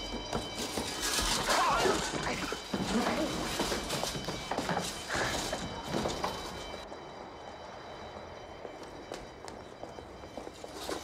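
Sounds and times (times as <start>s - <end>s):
running footsteps on concrete: 0.0s - 11.0s.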